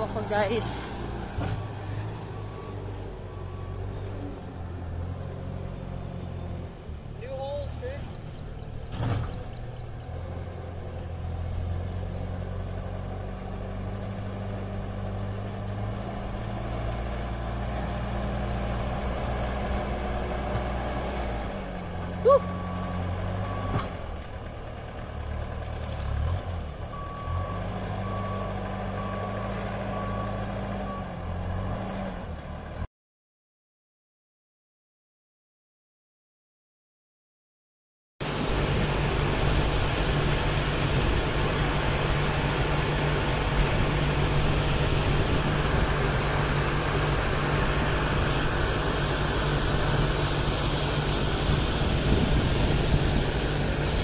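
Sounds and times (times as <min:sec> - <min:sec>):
loader engine under load: 0:00.0 - 0:32.9, 0:38.2 - 0:54.0
reversing alarm beeping: 0:27.0 - 0:31.2.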